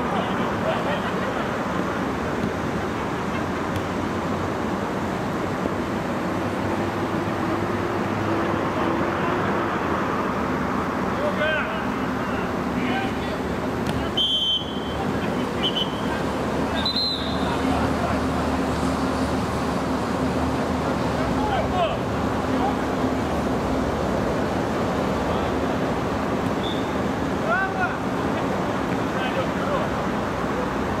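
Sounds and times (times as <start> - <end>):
steady noisy hiss: 0.0 - 31.0
distant shouts: 13.9 - 17.9
short high whistle tones: 14.2 - 15.0, 16.8 - 17.5, 26.6 - 27.0.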